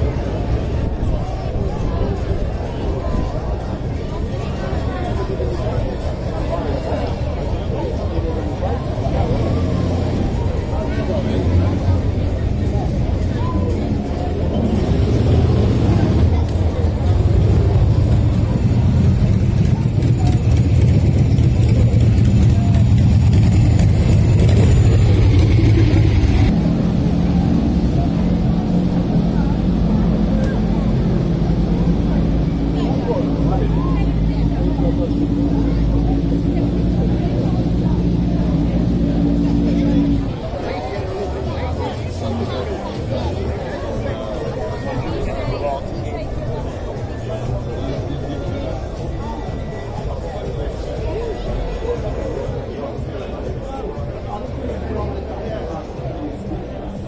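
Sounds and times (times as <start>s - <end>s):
people talking: 0.0s - 57.0s
vehicle engine running: 5.1s - 44.5s.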